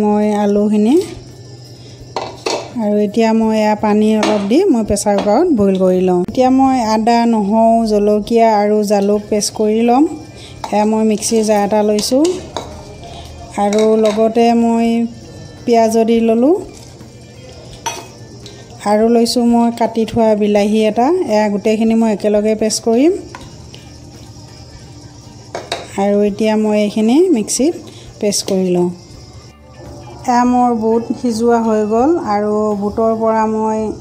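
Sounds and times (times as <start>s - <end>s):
potatoes clanking in metal pot: 2.2s - 2.8s
steel bowl clinking on jar: 17.8s - 18.2s.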